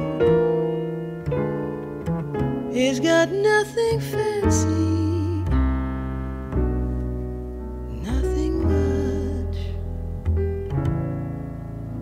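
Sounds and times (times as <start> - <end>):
jazz piano chords: 0.0 - 12.0
low held bass notes: 4.1 - 12.0.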